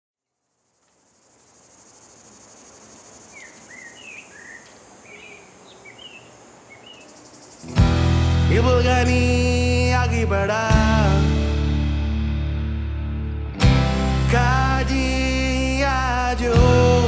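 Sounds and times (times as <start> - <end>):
high insect drone: 0.2 - 7.9
short bird chirps: 3.3 - 7.8
full-band music: 7.8 - 17.0.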